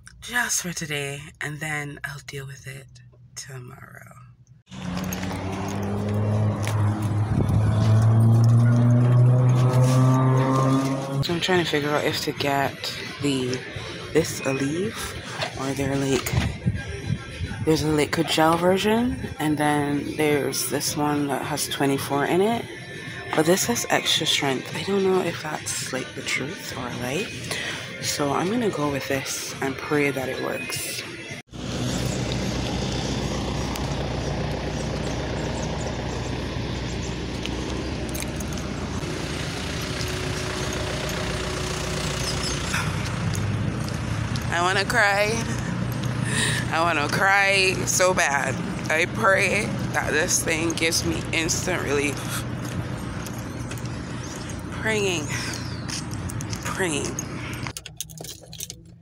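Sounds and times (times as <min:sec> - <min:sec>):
steady outdoor noise: 0:00.0 - 0:59.0
vehicle engine rumble: 0:00.0 - 0:59.0
small objects clicking and jingling: 0:57.6 - 0:59.0.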